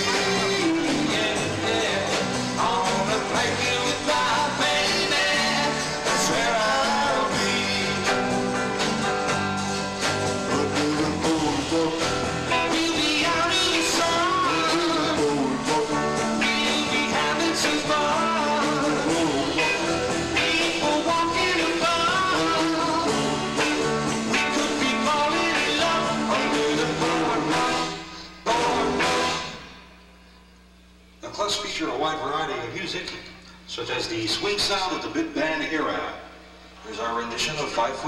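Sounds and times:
man singing into a microphone: 0.0s - 8.1s, 10.5s - 23.1s, 24.5s - 29.0s
live rock band playing: 0.0s - 30.0s.

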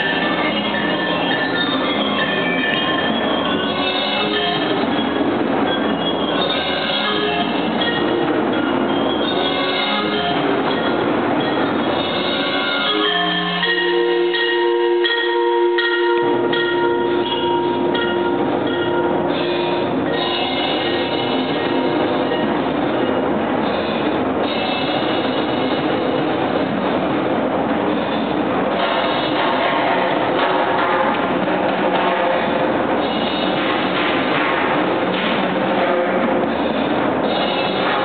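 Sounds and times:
percussion ensemble ringing tones: 0.0s - 23.2s.

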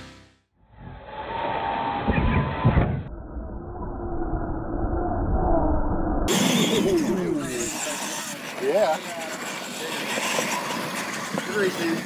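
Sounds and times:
outdoor background noise: 0.6s - 12.0s.

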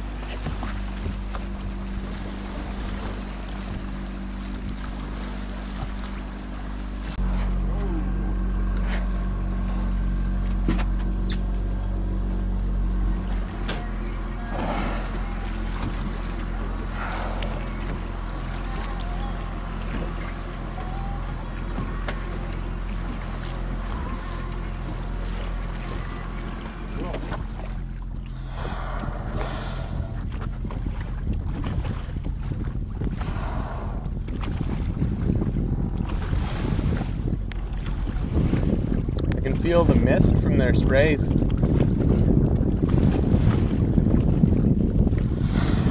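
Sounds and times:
boat engine humming: 0.0s - 45.9s
water noise: 0.0s - 45.9s
wind: 0.0s - 45.9s.

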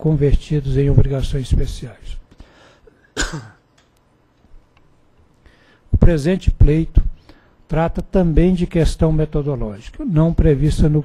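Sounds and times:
man clearing his throat: 3.0s - 3.6s.

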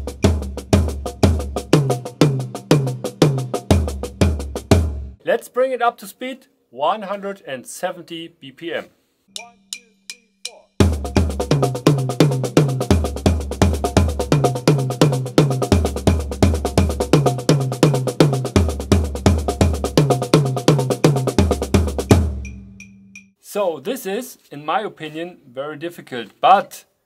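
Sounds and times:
snare drum paradiddles: 0.0s - 4.9s, 9.4s - 23.4s
tom drum accents: 0.0s - 5.2s, 9.4s - 23.3s.

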